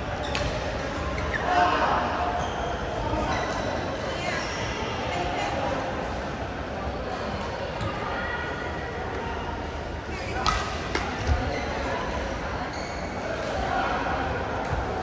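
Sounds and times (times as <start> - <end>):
racket hitting shuttlecock: 10.4 - 11.4.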